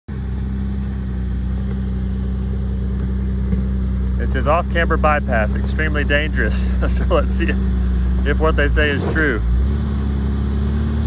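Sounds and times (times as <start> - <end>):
engine running at low revs: 0.1 - 11.0.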